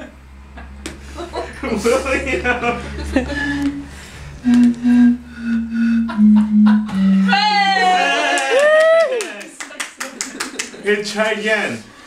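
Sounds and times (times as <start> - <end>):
note blown across bottle: 3.4 - 7.8
hand claps: 8.3 - 10.8.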